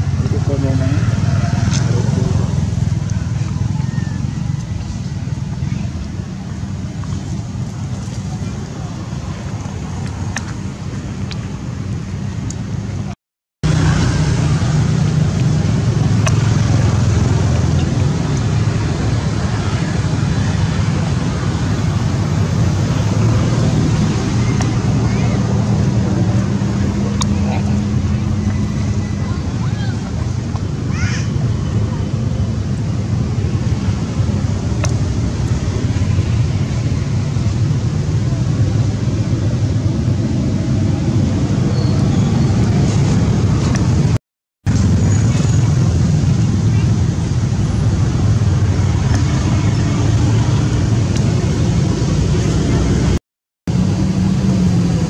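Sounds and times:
low outdoor rumble: 0.0 - 55.0.

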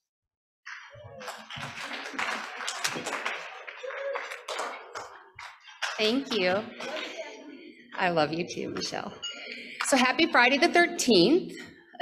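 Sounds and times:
audience applauding: 0.7 - 7.1.

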